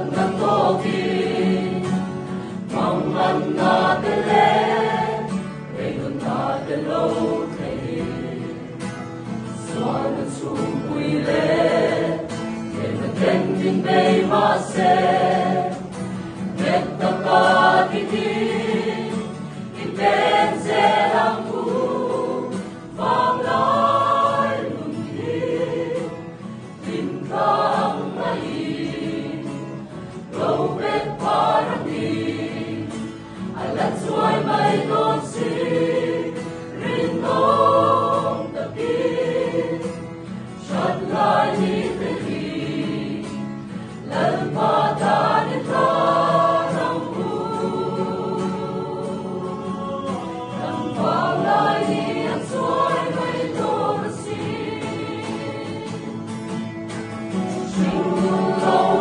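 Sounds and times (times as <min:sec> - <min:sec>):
acoustic guitar: 0:00.0 - 0:59.0
choir singing a hymn: 0:00.0 - 0:59.0.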